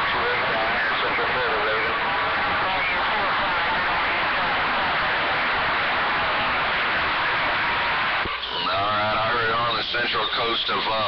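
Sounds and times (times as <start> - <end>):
faint garbled radio voice: 0.0 - 11.0
radio static hiss: 0.0 - 11.0.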